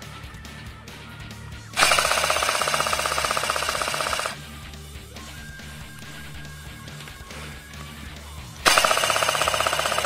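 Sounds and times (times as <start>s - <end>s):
background music: 0.0s - 10.0s
airsoft gun full-auto burst: 1.8s - 4.4s, 8.7s - 10.0s.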